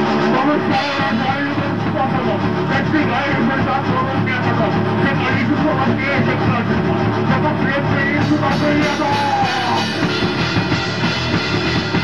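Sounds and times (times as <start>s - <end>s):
band playing heavy metal: 0.0s - 12.0s.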